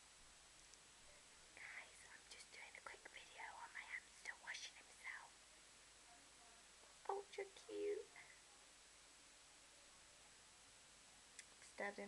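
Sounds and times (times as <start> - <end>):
person whispering: 1.6 - 5.4, 7.0 - 8.6.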